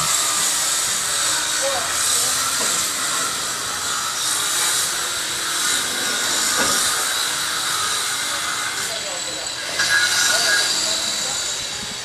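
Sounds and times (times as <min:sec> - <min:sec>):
loud steady hiss: 0:00.0 - 0:12.0.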